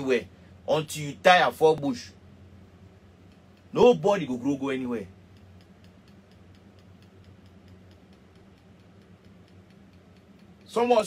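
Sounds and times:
steady low hum: 0.0s - 11.0s
rapid regular ticking: 2.8s - 11.0s.

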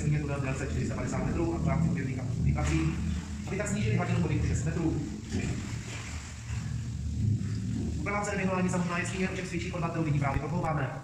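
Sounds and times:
low echoing rumble: 0.0s - 11.0s.

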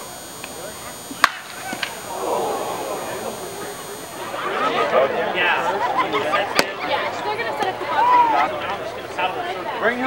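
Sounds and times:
voices chattering: 0.0s - 10.0s.

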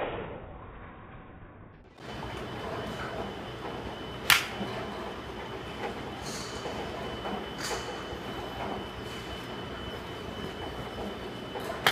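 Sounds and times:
faint high whine: 1.9s - 11.9s
golf iron striking ball: 4.2s - 4.6s.

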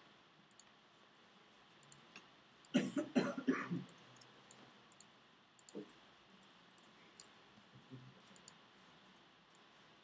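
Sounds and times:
faint clicks: 0.5s - 2.8s, 3.9s - 9.7s
person coughing and clearing throat: 2.7s - 3.9s.

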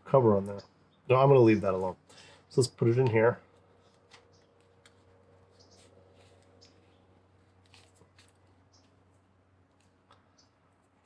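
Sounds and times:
low steady hum: 0.0s - 11.0s
small clicks and rubs of handling: 3.0s - 9.0s.

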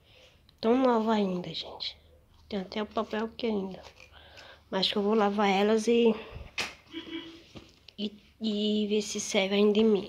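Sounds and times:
clothing rustling against phone: 6.8s - 8.5s.

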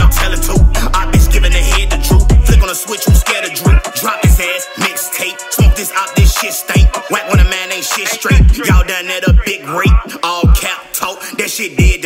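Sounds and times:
deep bass hits: 0.0s - 2.6s
rapping over a beat: 0.0s - 12.0s.

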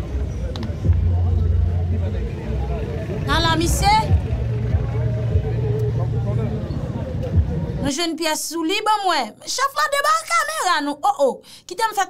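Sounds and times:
vehicle engine idling: 0.0s - 7.8s.

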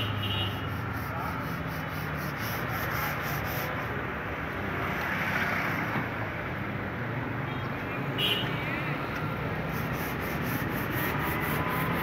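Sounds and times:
pad rubbing car door: 9.8s - 12.0s.

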